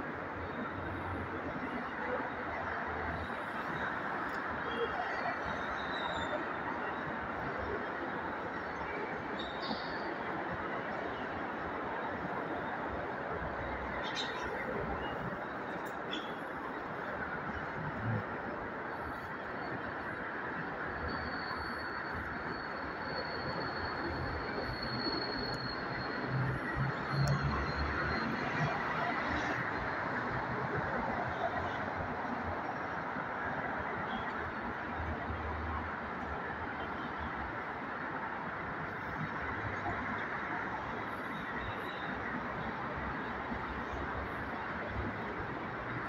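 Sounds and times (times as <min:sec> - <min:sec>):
city road traffic hum: 0:00.0 - 0:46.0.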